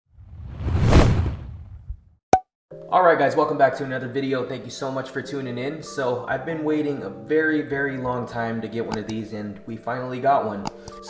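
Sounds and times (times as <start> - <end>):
whoosh: 0.1 - 2.1.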